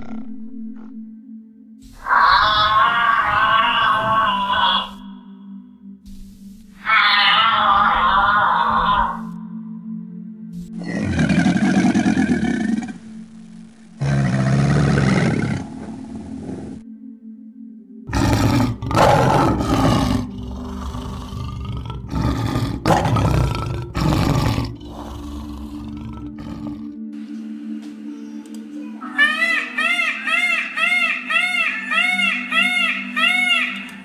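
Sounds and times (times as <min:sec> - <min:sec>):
lion roaring: 0:02.0 - 0:05.0, 0:06.8 - 0:09.3, 0:10.7 - 0:13.0, 0:14.0 - 0:16.8, 0:18.1 - 0:27.0.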